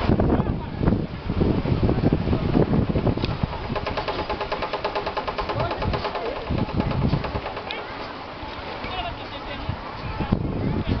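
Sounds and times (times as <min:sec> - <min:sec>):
machine clattering: 0:03.3 - 0:08.1.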